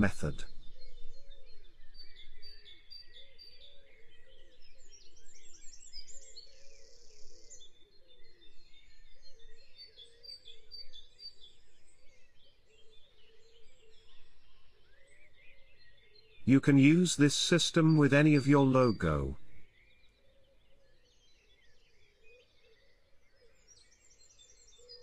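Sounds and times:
songbirds singing and chirping: 0.0s - 11.6s.

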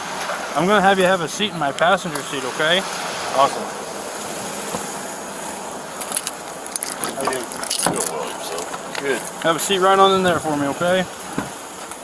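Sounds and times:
outdoor microphone hiss: 0.0s - 12.0s
clicks and rustling: 6.0s - 9.5s.

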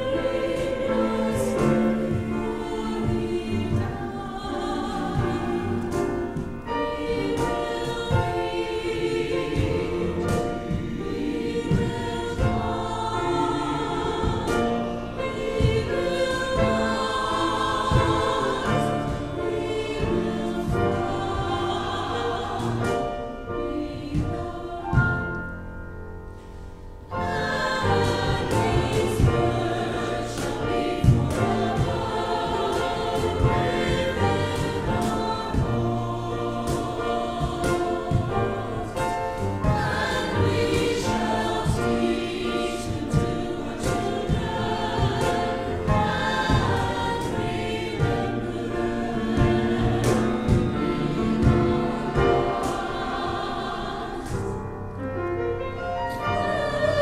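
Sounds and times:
mixed choir singing: 0.0s - 25.8s, 26.6s - 57.0s.

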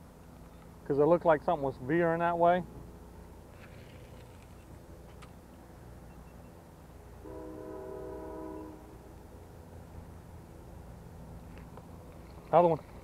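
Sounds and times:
low steady rumble: 0.0s - 13.0s
horn chord: 7.2s - 9.0s.

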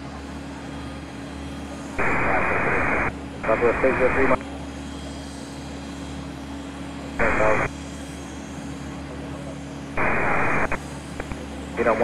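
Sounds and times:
steady low hum: 0.0s - 12.0s
radio call: 2.0s - 4.4s, 7.2s - 7.7s, 10.0s - 12.0s
radio hiss: 2.0s - 4.4s, 7.2s - 7.7s, 10.0s - 12.0s.

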